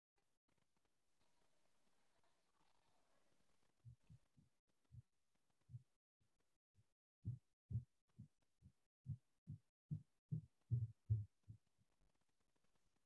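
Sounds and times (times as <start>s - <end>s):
soft low thumps: 7.2s - 8.3s, 9.1s - 11.6s.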